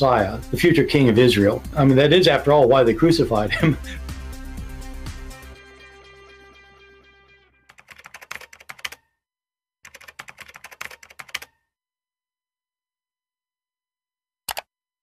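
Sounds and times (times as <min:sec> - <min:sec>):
music: 0:00.0 - 0:08.0
rapid clicking: 0:09.9 - 0:11.5.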